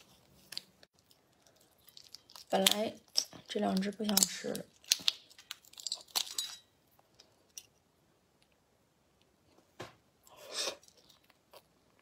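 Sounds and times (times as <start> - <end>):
shell cracking and snapping: 0.5 - 7.7.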